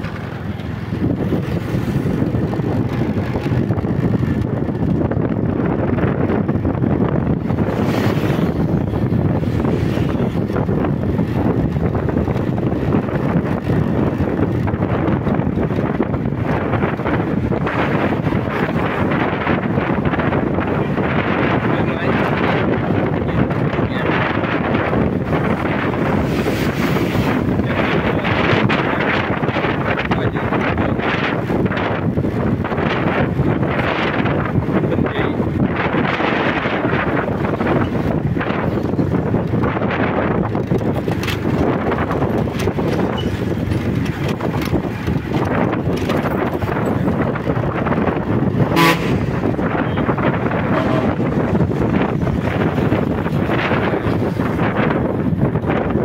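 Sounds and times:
scooter engine: 0:00.0 - 0:05.5
road noise: 0:00.0 - 0:56.0
wind buffeting microphone: 0:00.0 - 0:56.0.

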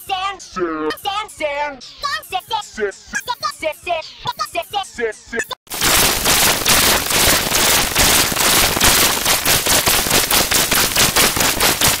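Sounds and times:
distorted crackling digital noise: 0:05.7 - 0:12.0.

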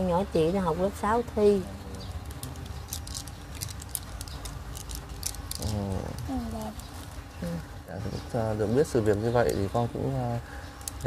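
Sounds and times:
low steady hum: 0:00.0 - 0:11.0
paper snack wrappers crackling: 0:02.2 - 0:07.3, 0:10.7 - 0:11.0.

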